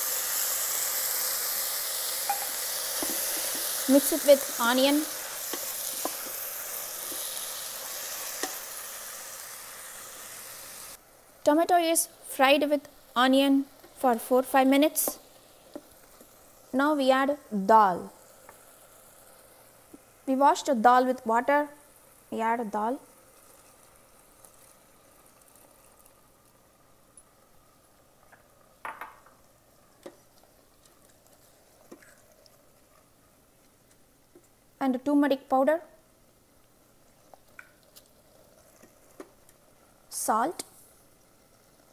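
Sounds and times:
vegetables sizzling in hot oil: 0:00.0 - 0:35.5, 0:36.4 - 0:41.9
wooden spoon knocking on pot: 0:28.8 - 0:29.3.

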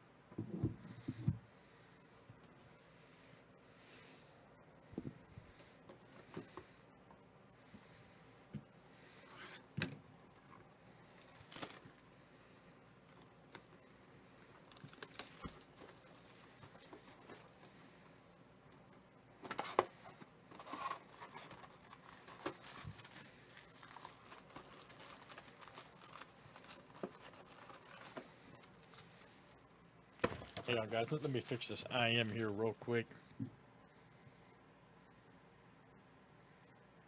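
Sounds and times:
cellophane tearing and crinkling: 0:11.1 - 0:12.1, 0:13.0 - 0:17.6, 0:20.5 - 0:29.6, 0:30.2 - 0:32.6.

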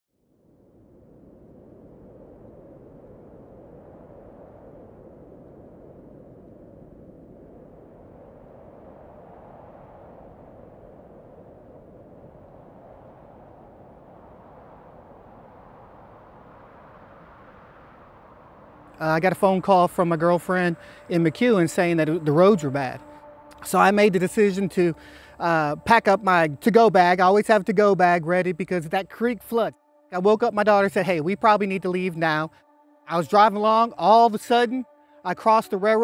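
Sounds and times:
low rumbling noise: 0:00.2 - 0:36.0.

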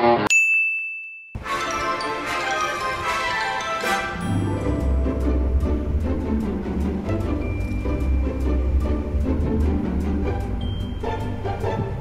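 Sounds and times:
high bell-like ding: 0:00.3 - 0:01.4
background music: 0:01.4 - 0:12.0.

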